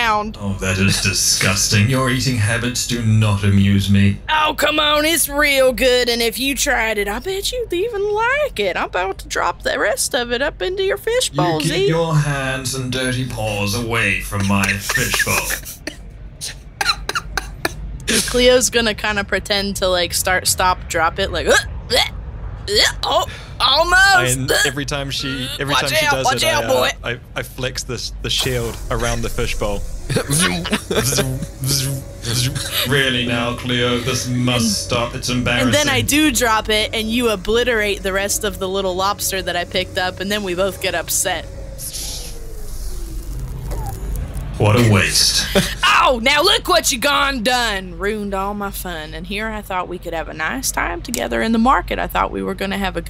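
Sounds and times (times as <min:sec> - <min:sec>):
low ambient rumble: 0:00.0 - 0:53.0
person laughing quietly: 0:00.6 - 0:02.6, 0:13.3 - 0:18.4, 0:24.2 - 0:27.1, 0:30.1 - 0:36.0, 0:45.2 - 0:45.8
faint hiss: 0:26.8 - 0:36.0.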